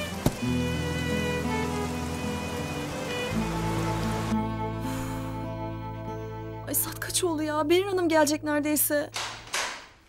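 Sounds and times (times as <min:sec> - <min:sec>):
rain falling on pavement: 0:00.0 - 0:04.4
dramatic music with held notes: 0:00.0 - 0:07.7.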